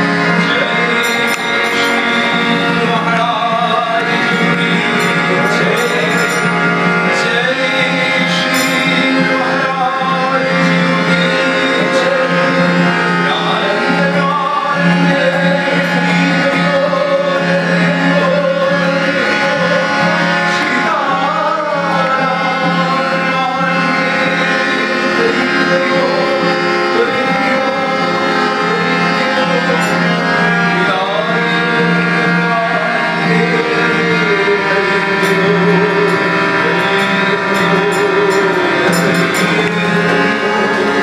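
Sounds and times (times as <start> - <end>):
harmonium drone and chords: 0.0 - 41.0
man singing a devotional song: 0.0 - 41.0.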